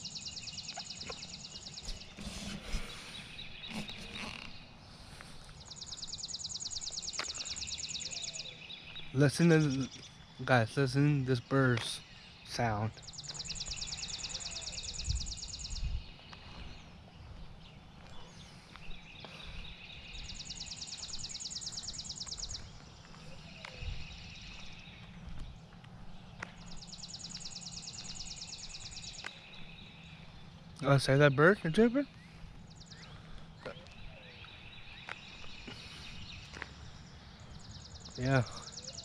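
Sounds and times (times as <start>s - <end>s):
songbird trilling: 0.0s - 4.8s, 5.6s - 16.4s, 18.8s - 25.2s, 26.6s - 39.0s.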